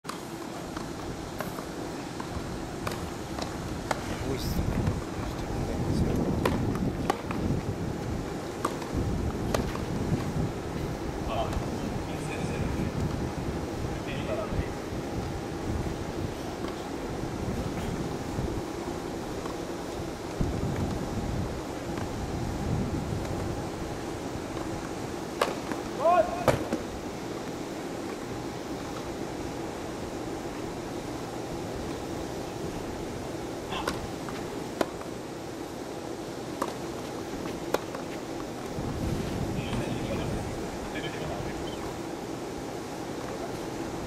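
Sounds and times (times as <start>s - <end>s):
outdoor background hiss: 0.0s - 44.0s
racket hitting tennis ball: 0.8s - 4.1s, 8.6s - 9.9s, 25.3s - 26.9s, 36.6s - 38.2s
wind rumble on microphone: 3.6s - 19.4s, 20.0s - 25.1s, 38.7s - 41.6s.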